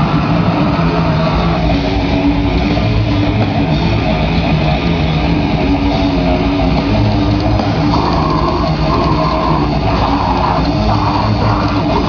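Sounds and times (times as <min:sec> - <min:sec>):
distorted electric guitars: 0:00.0 - 0:12.0
drums: 0:00.0 - 0:12.0.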